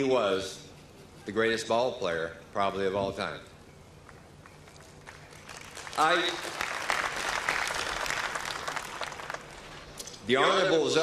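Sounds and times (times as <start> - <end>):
audience applauding: 4.6 - 9.9.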